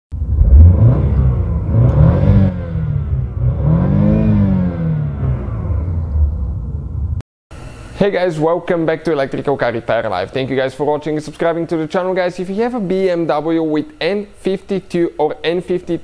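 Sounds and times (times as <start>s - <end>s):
car engine revving: 0.2s - 7.2s.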